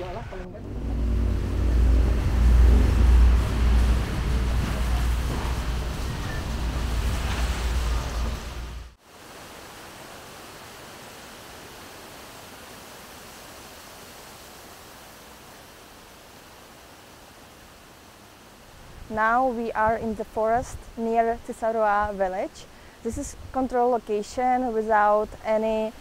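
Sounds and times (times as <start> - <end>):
loud low rumble with wind noise: 0.0 - 9.0
forest ambience hiss: 6.2 - 26.0.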